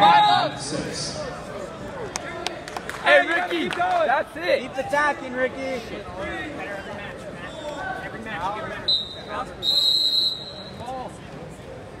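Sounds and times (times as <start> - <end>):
crowd chatter: 0.0 - 12.0
high steady whistle tone: 8.8 - 10.9.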